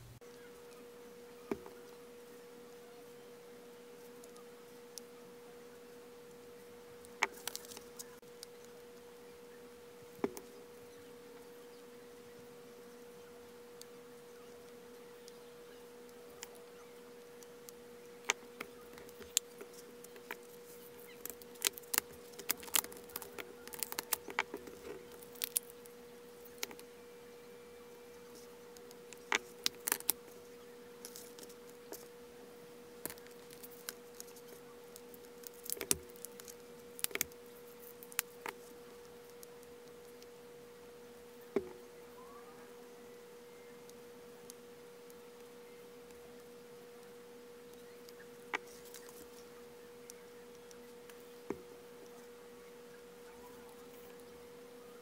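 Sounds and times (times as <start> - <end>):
faint steady hum: 0.0 - 55.0.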